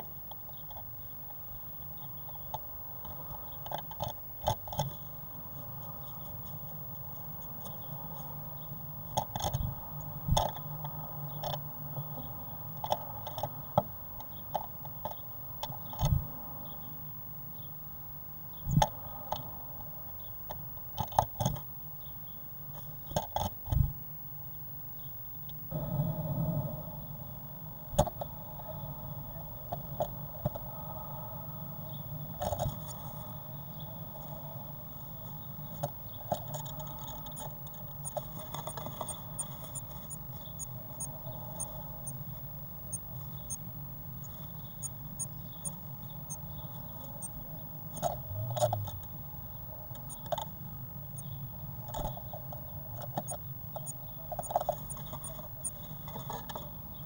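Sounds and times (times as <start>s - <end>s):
steady low hum: 0.0s - 57.0s
bird tapping and scratching: 2.0s - 8.4s, 9.1s - 11.6s, 20.5s - 21.7s, 22.7s - 23.8s, 35.7s - 41.8s, 51.2s - 56.8s.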